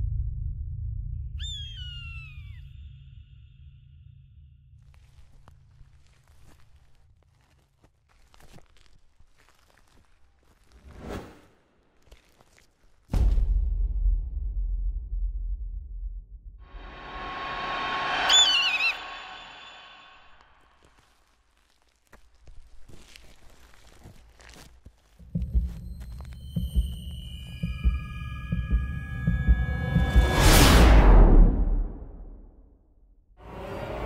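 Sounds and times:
deep low rumble: 0.0 - 1.4, 13.4 - 20.3, 25.4 - 32.6
high wavering screech: 16.7 - 20.4
rushing noise swell: 16.7 - 20.4
long high cry sliding down: 16.8 - 20.2
faint high tone: 16.9 - 20.3.

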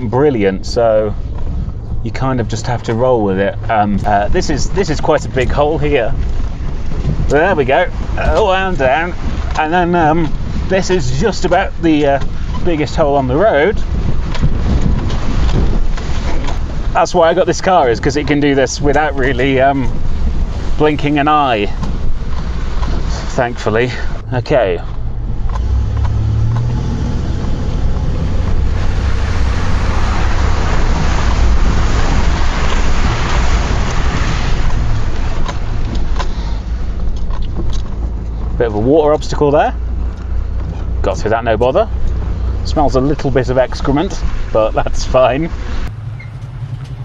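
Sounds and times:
vehicle road and suspension rumble: 0.0 - 47.0
water rushing and splashing: 0.0 - 47.0
wind buffeting microphone: 0.0 - 47.0.

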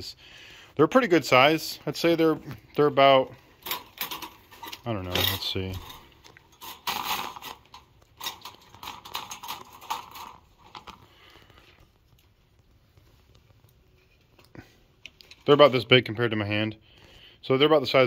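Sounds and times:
scrapes against wire cage: 3.6 - 11.0.

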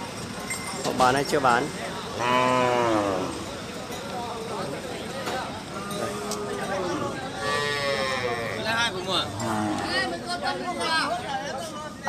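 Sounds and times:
cow mooing: 2.2 - 3.4, 6.8 - 10.1
men talking: 8.2 - 12.0.

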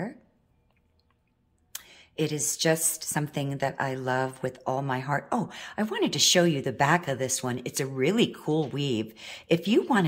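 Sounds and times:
woman speaking: 0.0 - 0.3, 2.2 - 10.0.

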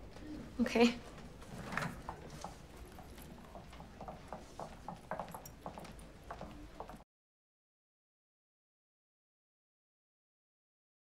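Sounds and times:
footsteps clicking on hard floor: 1.1 - 7.0.

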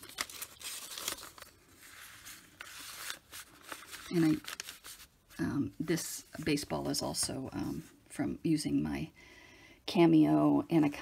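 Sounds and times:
paper rustling and crackling: 0.0 - 7.8.

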